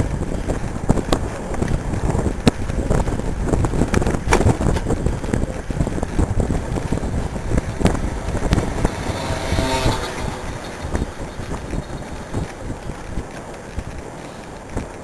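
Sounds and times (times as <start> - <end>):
low rumble: 0.0 - 15.0
wind buffeting microphone: 0.0 - 15.0.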